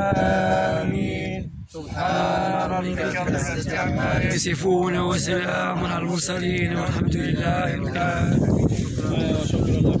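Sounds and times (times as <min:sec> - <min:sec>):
men murmuring a prayer: 0:00.0 - 0:10.0.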